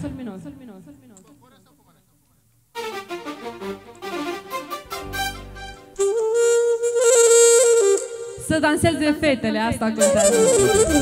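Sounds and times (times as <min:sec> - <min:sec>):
live band music: 0:02.8 - 0:08.2, 0:10.0 - 0:11.0
saxophone holding a long note: 0:10.0 - 0:11.0.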